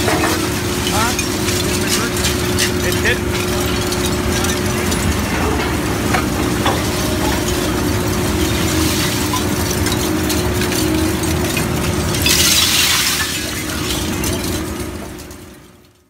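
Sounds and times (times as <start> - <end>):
wire pieces spilling onto pile: 0.0 - 14.8
shredder machine humming: 0.0 - 15.9.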